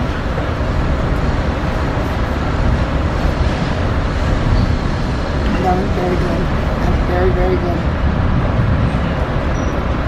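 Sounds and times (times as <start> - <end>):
passenger train running: 0.0 - 10.0.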